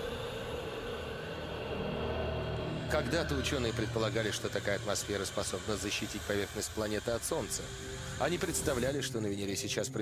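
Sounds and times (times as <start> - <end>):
low rumbling drone: 0.0 - 9.2
hiss: 3.6 - 9.1.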